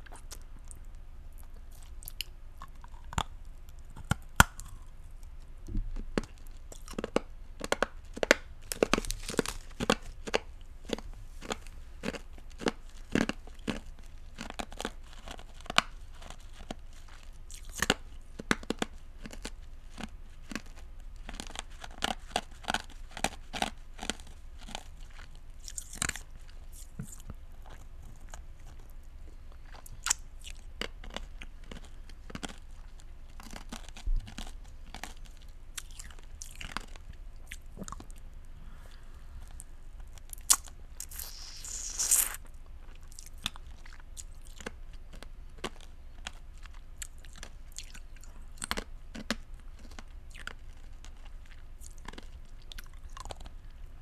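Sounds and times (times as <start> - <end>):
crunching and wet mouth sounds: 0.0 - 53.8
rock candy cracking: 40.2 - 42.4
lips sucking and smacking: 40.4 - 42.5.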